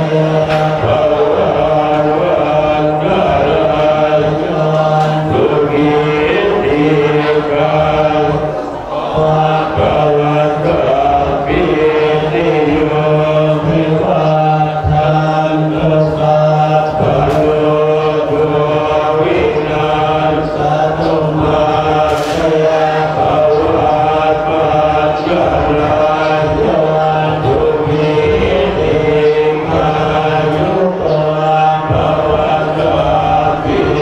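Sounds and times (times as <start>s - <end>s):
monks chanting in unison: 0.0s - 34.0s.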